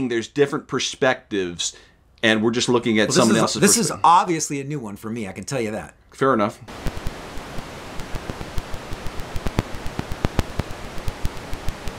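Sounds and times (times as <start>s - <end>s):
crackling clicks and pops: 6.7s - 11.9s
steady hiss: 6.7s - 11.9s.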